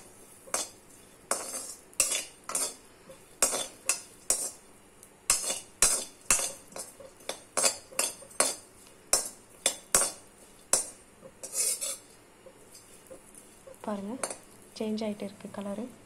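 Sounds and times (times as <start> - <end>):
metal ladle scraping a metal pan: 0.5 - 2.8, 5.3 - 12.1.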